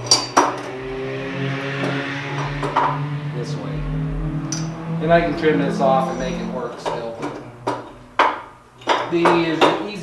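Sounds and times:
machine hum: 0:00.0 - 0:09.3.

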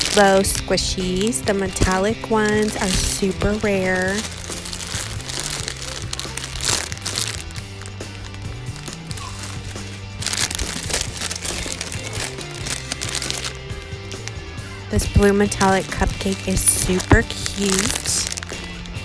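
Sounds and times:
background music with bass line: 0:00.0 - 0:19.0
plastic wrapping crinkling: 0:00.0 - 0:19.0.

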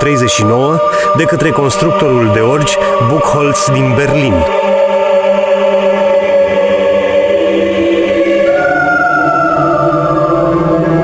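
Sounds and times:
slow choral chords: 0:00.0 - 0:11.0.

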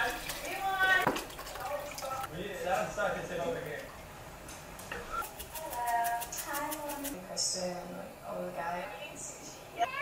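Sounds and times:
seasoning shaker rattling: 0:05.2 - 0:07.2.

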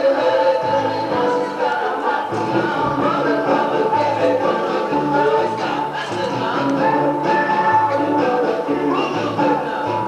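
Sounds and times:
several voices singing a song: 0:00.0 - 0:10.0.

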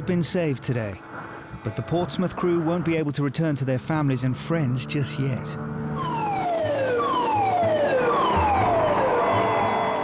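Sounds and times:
falling electronic siren tone: 0:06.0 - 0:10.0.

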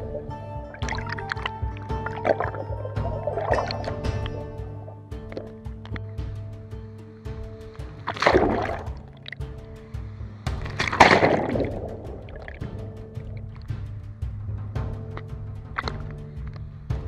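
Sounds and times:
background music: 0:00.0 - 0:17.0
churning water underwater: 0:00.0 - 0:17.0.

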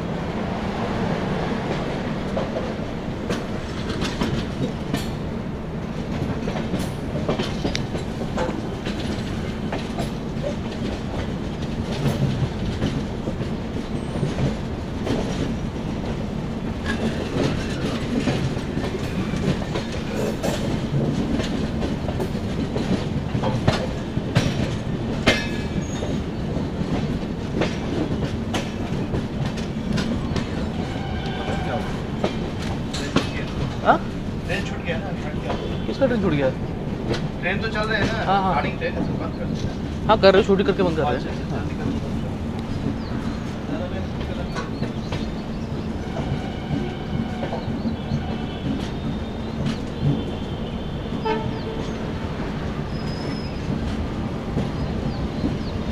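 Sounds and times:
train rumbling on track: 0:00.0 - 0:55.9
wheels clattering over rail joints: 0:06.0 - 0:35.9.

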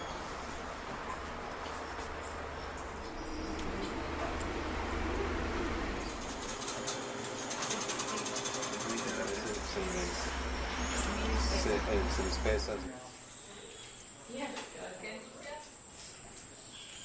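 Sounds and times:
low hum: 0:00.0 - 0:06.9, 0:09.2 - 0:12.9.

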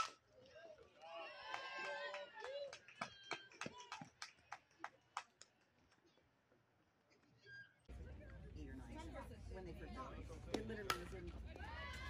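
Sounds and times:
voices shouting and cheering: 0:00.3 - 0:04.3, 0:07.4 - 0:12.0
bat striking ball: 0:10.5 - 0:11.2.

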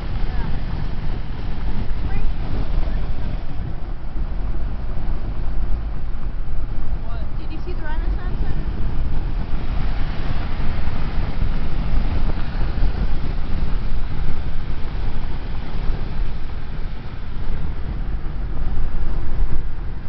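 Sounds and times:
road and wind noise inside car: 0:00.0 - 0:20.0.

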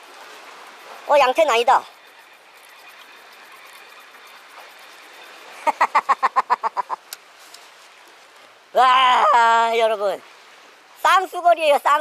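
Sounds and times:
man laughing: 0:05.5 - 0:07.1.

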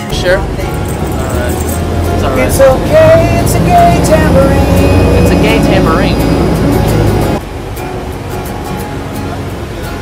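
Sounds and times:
man singing: 0:00.0 - 0:06.2
low vehicle rumble: 0:00.0 - 0:10.0
music: 0:00.0 - 0:10.0.

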